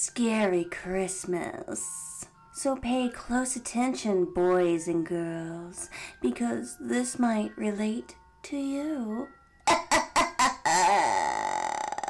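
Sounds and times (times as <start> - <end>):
woman laughing spookily: 9.7 - 12.0.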